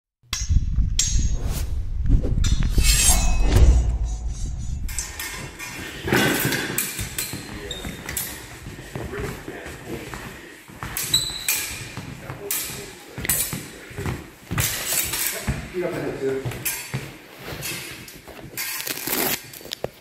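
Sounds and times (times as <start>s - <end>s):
steel blades clinking: 2.7s - 5.8s
footwork in echoing hall: 2.8s - 20.0s.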